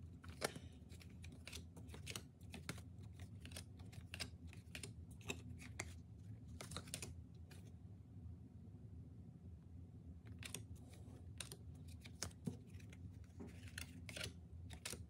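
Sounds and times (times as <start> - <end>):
cards being shuffled: 0.1 - 7.7, 10.3 - 15.0.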